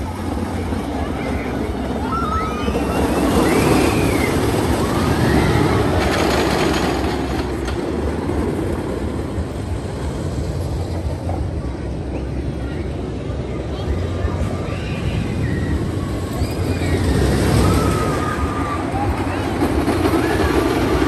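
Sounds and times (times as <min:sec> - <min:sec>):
roller coaster rumbling on track: 0:00.0 - 0:21.0
people crying out: 0:14.8 - 0:19.5.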